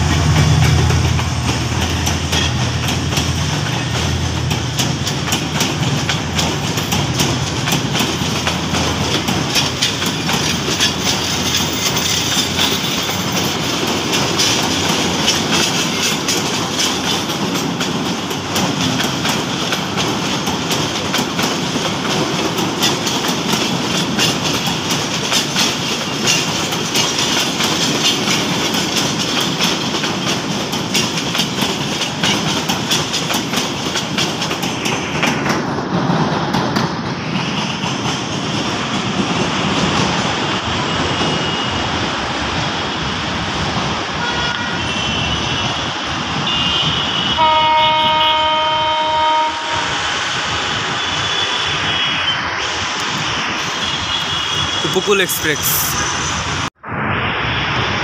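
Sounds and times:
wheels clicking over rail joints: 0.0s - 37.0s
train coaches rumbling past: 0.0s - 58.0s.

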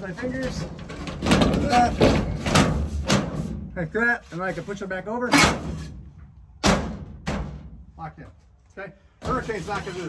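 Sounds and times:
panel knocking and rattling: 0.2s - 3.5s.

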